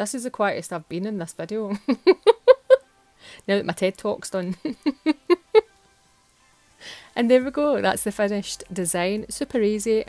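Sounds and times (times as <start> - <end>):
woman laughing: 1.7 - 2.8, 4.5 - 5.7
soft inhale: 3.2 - 3.5, 6.7 - 7.2.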